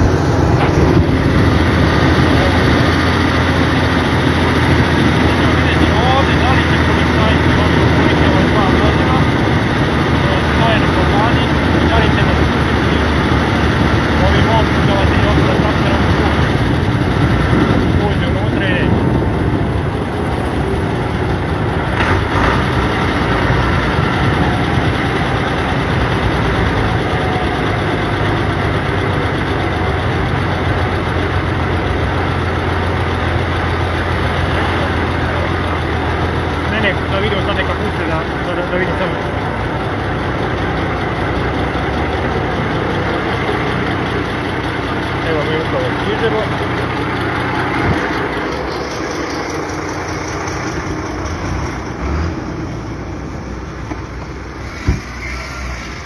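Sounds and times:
tractor engine droning: 0.0 - 56.0.

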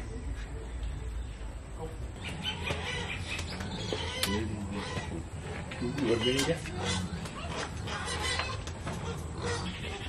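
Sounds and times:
birds chirping and clucking: 0.0 - 10.0.

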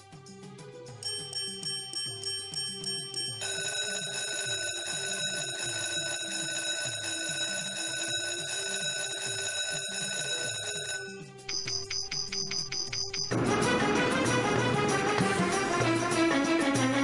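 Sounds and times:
looping low background tune: 0.0 - 17.0
electronic bell-like ringing: 1.0 - 13.5.

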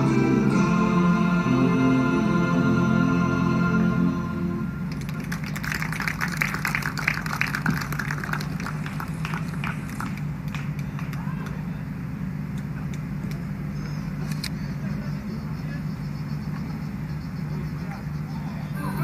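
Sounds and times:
low hum: 0.0 - 19.0
crowd clapping: 4.9 - 11.6
murmur of voices: 10.7 - 19.0.

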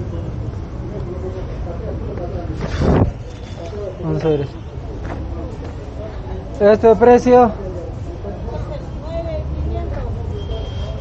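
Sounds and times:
faint voices: 0.0 - 11.0
street rumble: 0.0 - 11.0.

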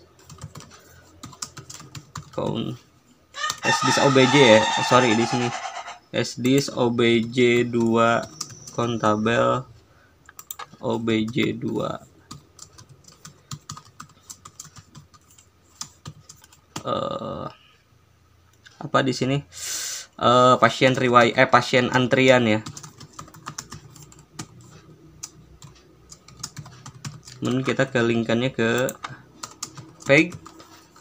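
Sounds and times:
computer keyboard typing: 0.0 - 2.8, 6.4 - 9.1, 10.3 - 17.0, 22.1 - 31.0.

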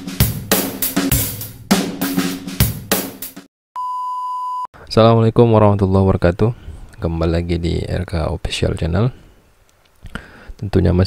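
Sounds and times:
drum kit music: 0.0 - 3.5
steady electronic beep: 3.8 - 4.7.

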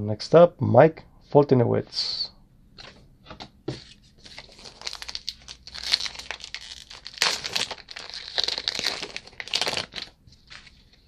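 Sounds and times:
wrapper crinkling and tearing: 4.2 - 11.0.

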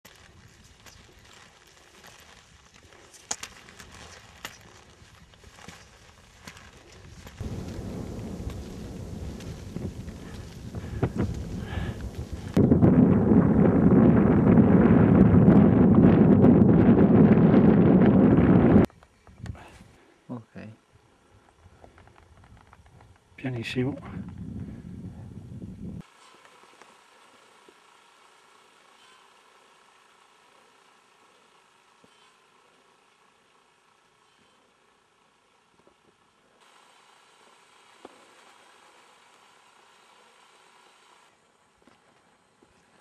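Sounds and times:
ski poles and skis on snow: 0.0 - 12.6, 26.0 - 43.0
wind buffeting microphone: 7.0 - 19.6, 23.8 - 26.0.

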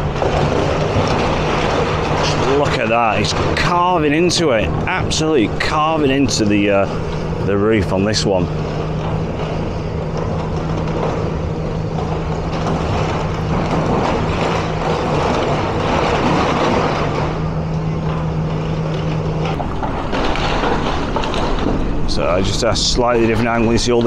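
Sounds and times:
excavator diesel engine running: 0.0 - 24.0
rubble crunching and clattering: 0.0 - 24.0.

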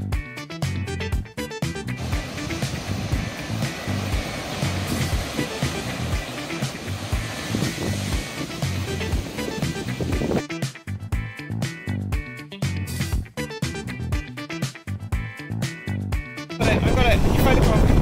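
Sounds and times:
background music with steady beat: 0.0 - 16.8
surf roaring into rocky cove: 2.0 - 10.4, 16.6 - 18.0.

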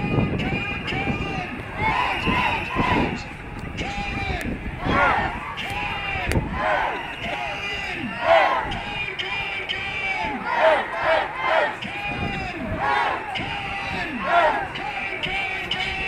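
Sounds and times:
crowd shouting: 0.0 - 16.0.

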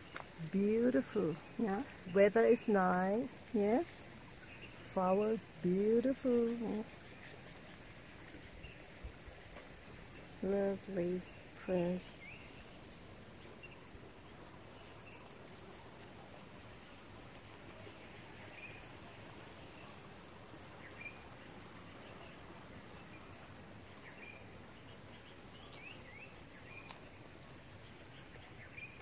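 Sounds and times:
insects droning: 0.0 - 29.0.

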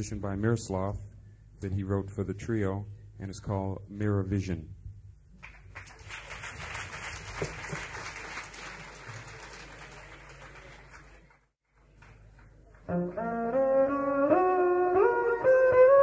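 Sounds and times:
audience applause: 5.4 - 12.8.

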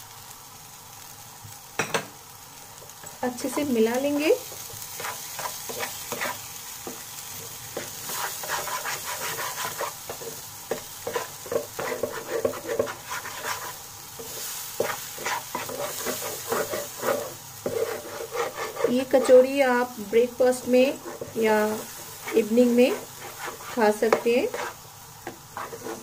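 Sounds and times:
paste sizzling in hot oil: 0.0 - 26.0
spatula scraping pan: 4.5 - 19.6, 20.5 - 26.0.

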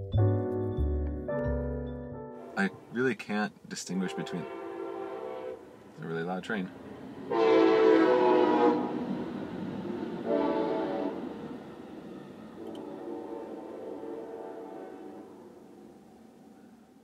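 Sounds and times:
train rumble: 3.9 - 17.0
train horn chord: 4.0 - 5.7, 7.3 - 9.2, 10.2 - 11.3, 12.6 - 15.9.

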